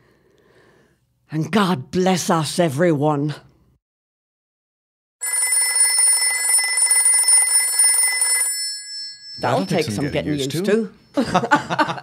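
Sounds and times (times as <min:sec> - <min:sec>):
telephone bell ringing: 0:05.2 - 0:10.4.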